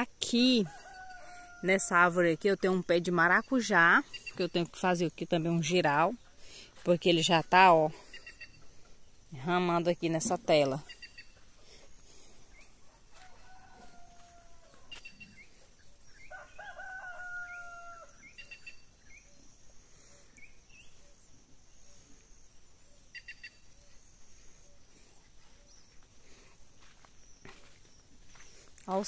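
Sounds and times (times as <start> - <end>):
rooster crowing: 0.6 - 2.0, 12.8 - 15.1, 16.2 - 18.3.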